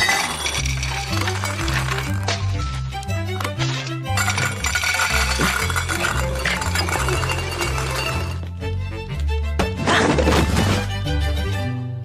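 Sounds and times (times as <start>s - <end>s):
kibble pouring into metal bowl: 0.0s - 2.4s, 4.2s - 8.4s
background music: 0.0s - 12.0s.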